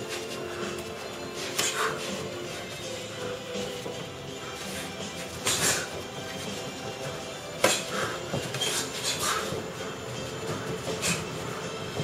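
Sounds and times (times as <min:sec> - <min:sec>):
bare feet on padded mat: 0:00.0 - 0:12.0.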